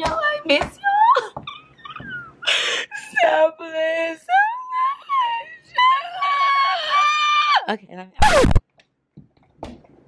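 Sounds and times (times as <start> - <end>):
woman talking: 0.0 - 1.4, 3.0 - 6.5, 7.6 - 8.3
woman squealing and whimpering: 0.8 - 8.6.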